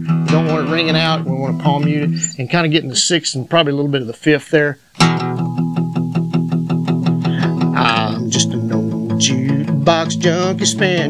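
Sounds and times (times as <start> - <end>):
palm-muted acoustic guitar strumming: 0.0 - 3.1, 5.0 - 11.0.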